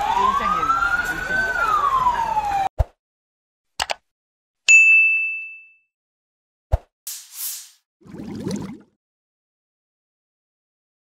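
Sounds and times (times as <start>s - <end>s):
siren wailing: 0.0s - 2.7s
bright ding: 4.7s - 5.8s.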